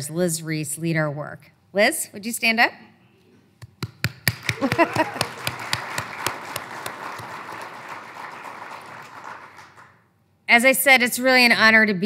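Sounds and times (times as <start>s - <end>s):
audience applauding: 4.2s - 10.0s.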